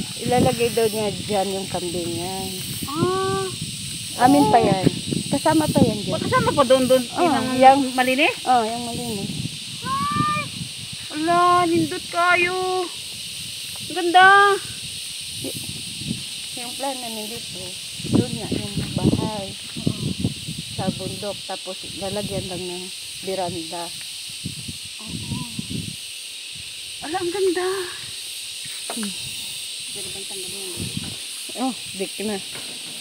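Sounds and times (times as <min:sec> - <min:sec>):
voices talking: 0:00.0 - 0:13.0, 0:13.8 - 0:14.7, 0:16.5 - 0:23.9, 0:25.0 - 0:25.8, 0:27.0 - 0:28.1, 0:29.9 - 0:32.5
insects buzzing: 0:00.0 - 0:33.0
short high-pitched calls: 0:09.7 - 0:10.6.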